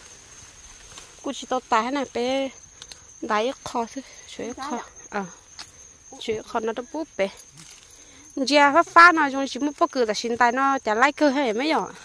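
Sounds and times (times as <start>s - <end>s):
high-pitched insect drone: 0.0s - 12.0s
person talking: 3.3s - 5.3s.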